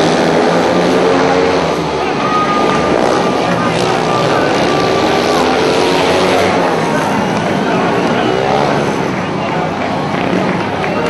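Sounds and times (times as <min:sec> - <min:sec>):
motorcycle engines racing: 0:00.0 - 0:11.0.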